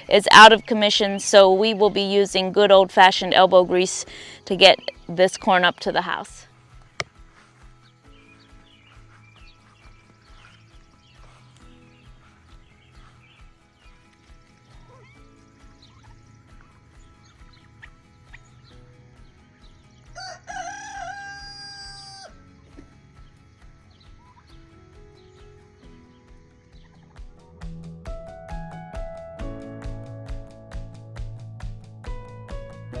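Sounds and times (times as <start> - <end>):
faint small birds chirping: 6.5 - 21.4, 22.2 - 27.7
rooster crowing: 20.2 - 22.4.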